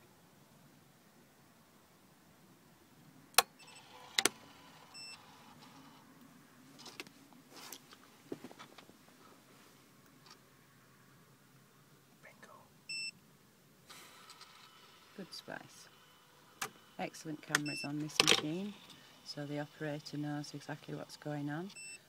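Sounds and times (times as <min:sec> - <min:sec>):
machine clicks and whirs: 0:03.4 - 0:06.0, 0:14.2 - 0:15.2.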